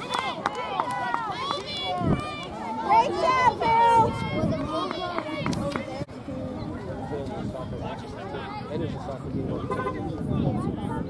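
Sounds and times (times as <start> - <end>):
voices calling out: 0.0 - 11.0.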